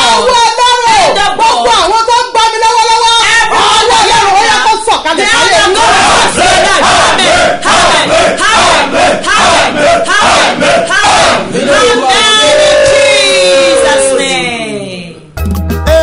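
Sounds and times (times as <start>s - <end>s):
person shouting a prayer: 0.0s - 5.8s, 10.9s - 15.0s.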